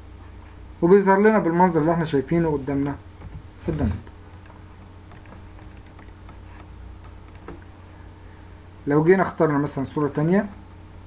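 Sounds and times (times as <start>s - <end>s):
steady low hum: 0.0s - 11.0s
mouse and keyboard clicks: 4.3s - 7.6s.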